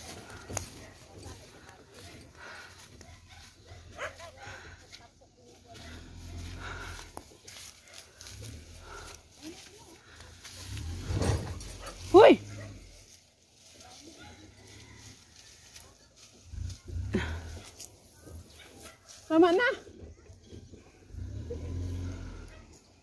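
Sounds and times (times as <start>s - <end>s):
low uneven rumble: 0.0s - 13.2s, 16.2s - 23.0s.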